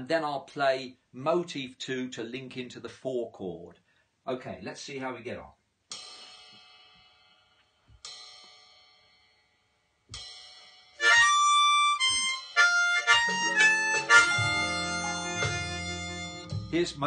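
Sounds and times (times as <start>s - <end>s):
harmonica: 11.0s - 17.0s
slow blues backing track: 11.0s - 17.0s.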